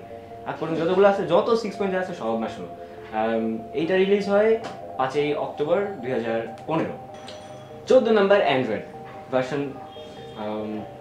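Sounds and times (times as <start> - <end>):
faint background music: 0.0 - 11.0
high bell-like chime: 5.9 - 8.7.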